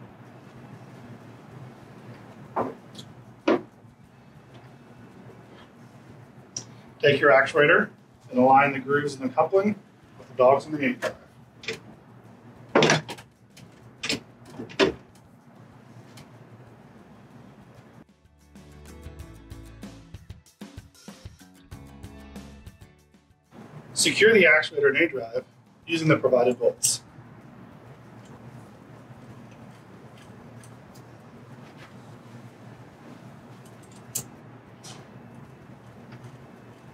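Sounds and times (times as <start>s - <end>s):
steady low hum: 0.0s - 18.1s, 23.5s - 36.9s.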